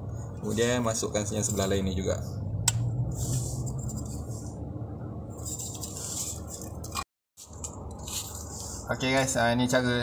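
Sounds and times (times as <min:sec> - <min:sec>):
soft rubbing and handling noises: 0:03.1 - 0:04.7, 0:05.3 - 0:09.3.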